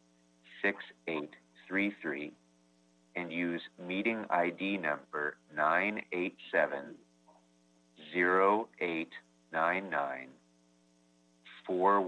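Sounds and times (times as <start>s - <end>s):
electrical hum: 0.0s - 12.0s
man speaking: 0.5s - 2.4s, 3.2s - 7.0s, 8.0s - 10.4s, 11.5s - 12.0s.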